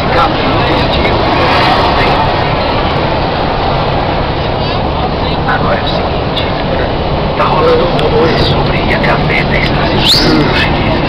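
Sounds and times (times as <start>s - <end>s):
moving bus interior noise: 0.0s - 11.0s
passengers chattering: 0.0s - 11.0s.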